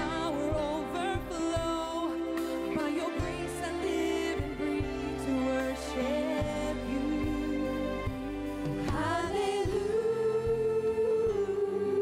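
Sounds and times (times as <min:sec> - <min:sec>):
live band accompaniment: 0:00.0 - 0:12.0
woman singing gospel song: 0:00.0 - 0:12.0.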